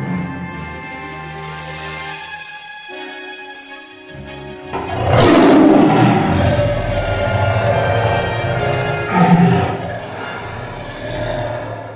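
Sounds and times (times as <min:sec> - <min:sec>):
outro music with steady tones: 0:00.0 - 0:11.9
tiger roar: 0:04.8 - 0:11.9.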